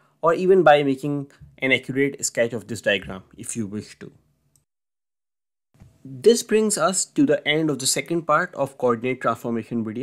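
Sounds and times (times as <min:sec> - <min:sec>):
man speaking: 0:00.2 - 0:04.2.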